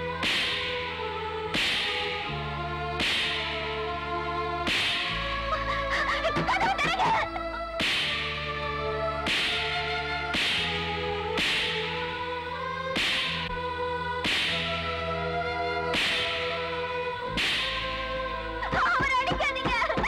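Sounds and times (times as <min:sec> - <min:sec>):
sustained orchestral chords: 0:00.0 - 0:19.9
sharp cracking hits: 0:07.8 - 0:08.2, 0:17.4 - 0:17.9.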